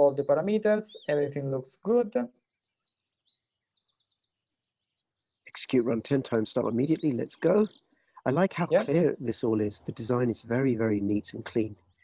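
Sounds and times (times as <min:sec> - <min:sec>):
faint high-pitched bird chirping: 0:00.0 - 0:12.0.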